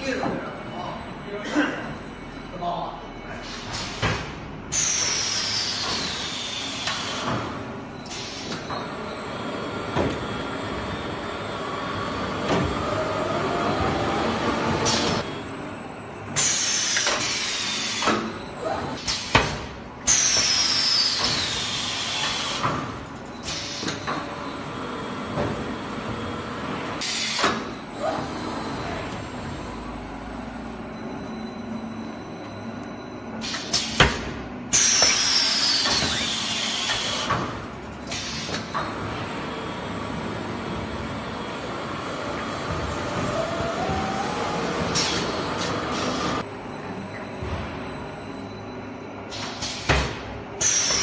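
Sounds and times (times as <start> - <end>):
machine running: 33.4 - 48.3.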